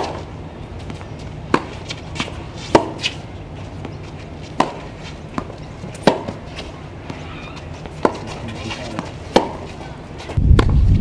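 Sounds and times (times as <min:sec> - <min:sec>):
low rumble: 0:10.4 - 0:11.0.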